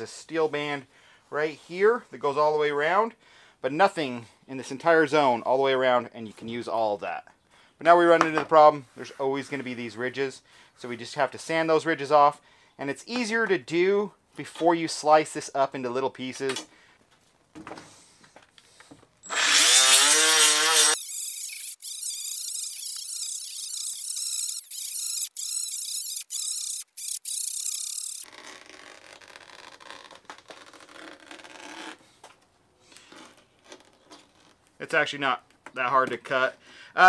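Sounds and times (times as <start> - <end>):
die grinder whining: 19.2 - 28.2
grinder grinding rubber tire: 19.2 - 28.4.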